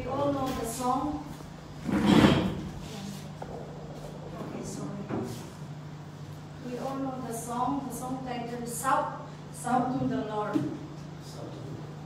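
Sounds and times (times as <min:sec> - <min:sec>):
woman speaking over microphone: 0:00.0 - 0:01.4, 0:04.2 - 0:05.4, 0:06.6 - 0:10.8
low steady hum: 0:00.0 - 0:12.0.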